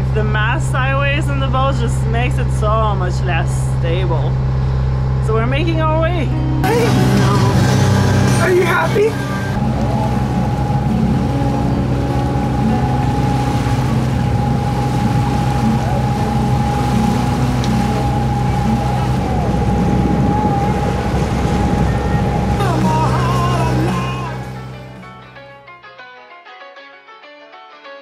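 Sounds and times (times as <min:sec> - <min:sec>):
wind: 0:00.0 - 0:25.3
boat diesel engine running: 0:00.0 - 0:25.5
water noise: 0:00.0 - 0:25.6.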